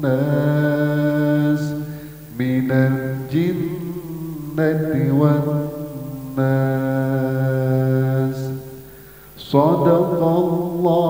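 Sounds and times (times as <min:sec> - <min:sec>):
man chanting melodically: 0:00.0 - 0:11.0.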